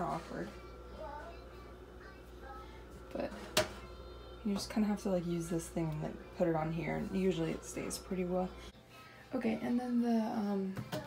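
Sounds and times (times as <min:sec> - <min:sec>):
low steady hum: 0:00.0 - 0:10.7.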